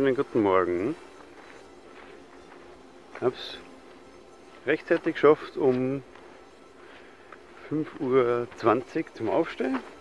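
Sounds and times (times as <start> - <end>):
man speaking: 0.0 - 1.1, 3.1 - 3.8, 4.6 - 6.1, 7.6 - 9.9
faint buzz of flying insects: 0.0 - 10.0.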